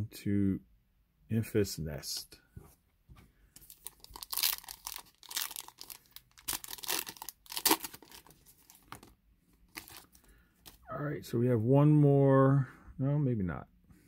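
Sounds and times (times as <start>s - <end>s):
foil wrapper tearing and crinkling: 3.6s - 9.1s, 9.7s - 10.1s.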